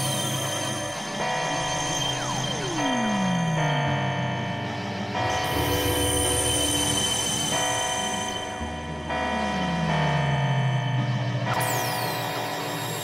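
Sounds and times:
synthesizer drone music: 0.0 - 13.0.

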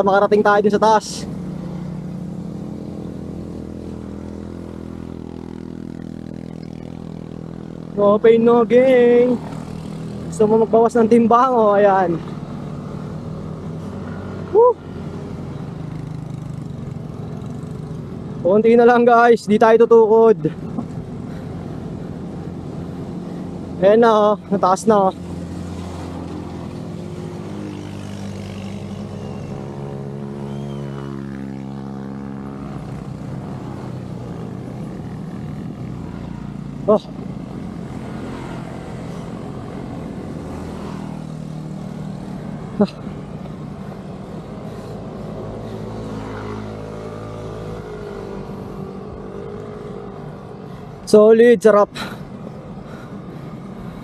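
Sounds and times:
motorcycle engines passing: 0.0 - 54.0
wind and road noise: 0.0 - 54.0.

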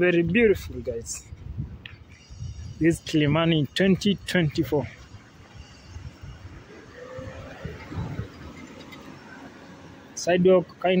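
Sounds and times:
quiet street ambience: 0.0 - 11.0.

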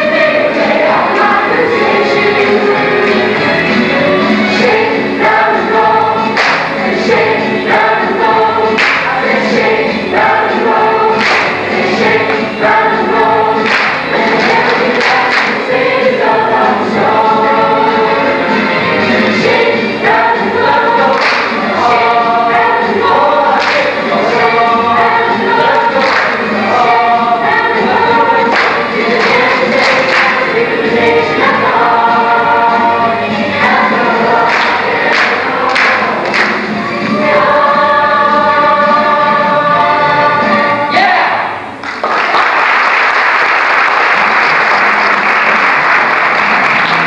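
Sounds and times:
choir singing: 0.0 - 41.6.

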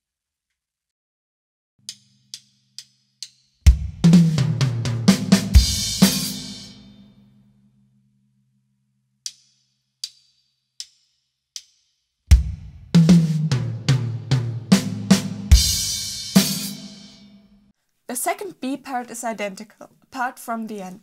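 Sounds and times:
drum fill on toms: 3.6 - 6.8, 12.3 - 17.2
crash cymbal and bass drum: 3.7 - 7.0, 12.3 - 17.4.

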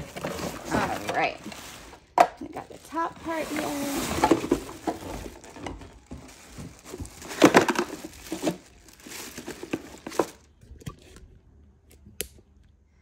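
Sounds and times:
plastic wrapping crinkling: 0.0 - 10.5.

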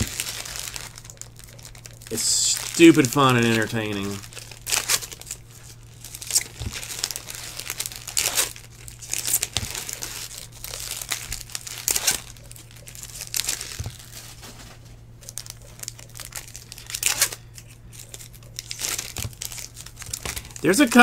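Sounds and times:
foil wrappers crinkling and tearing: 0.0 - 21.0.

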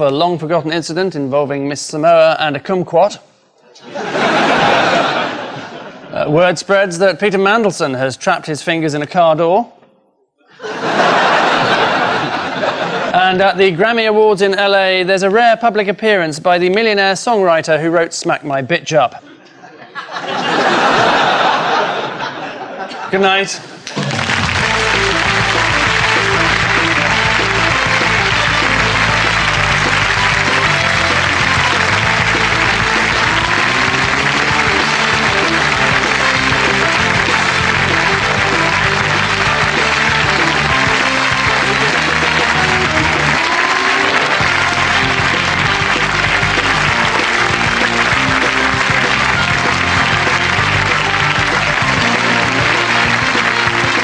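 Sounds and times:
audience applause: 4.2 - 5.7, 10.8 - 13.1, 23.8 - 54.0
instrumental theme music: 23.9 - 54.0.

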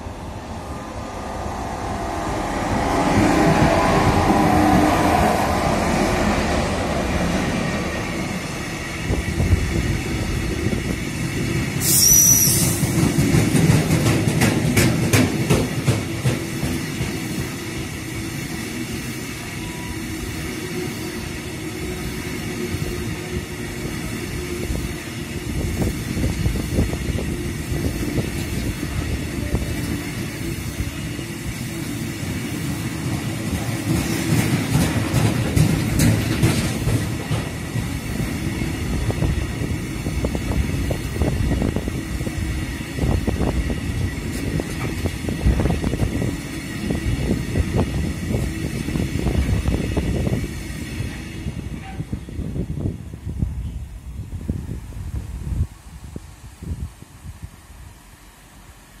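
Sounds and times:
train wheels rumbling on rail: 0.0 - 59.0
high wheel squeal: 11.8 - 12.9
wheels clacking over rail joints: 12.9 - 17.3, 32.8 - 38.8.

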